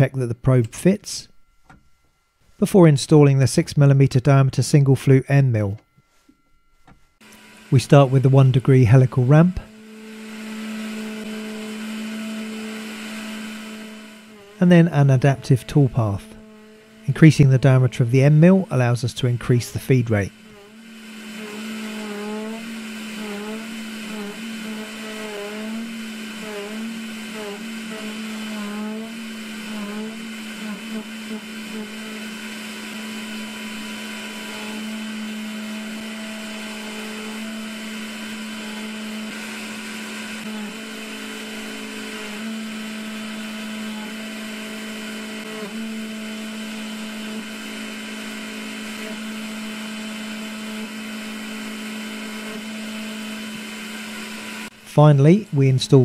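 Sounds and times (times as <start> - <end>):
milling machine cutting metal: 7.2 - 56.0.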